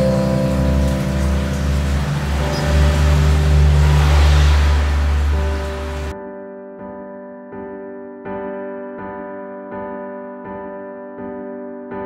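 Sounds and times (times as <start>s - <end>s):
heavy rain hiss: 0.0s - 6.1s
music with sustained notes: 0.0s - 12.0s.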